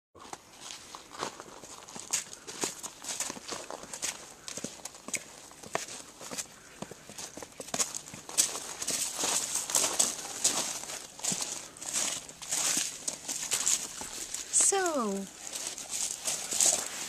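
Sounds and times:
footsteps crunching on gravel: 0:00.2 - 0:17.0.

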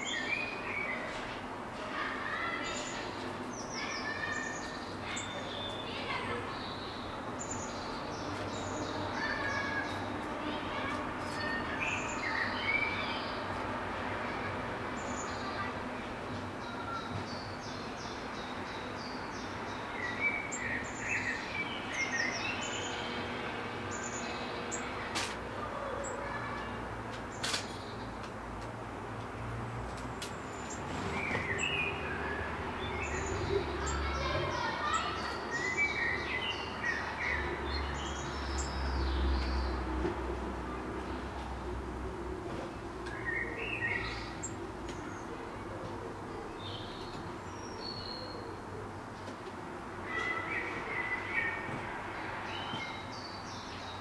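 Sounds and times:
songbirds chirping and singing: 0:00.0 - 0:01.2, 0:02.4 - 0:13.8, 0:14.5 - 0:28.4, 0:30.2 - 0:40.2, 0:40.9 - 0:54.0.

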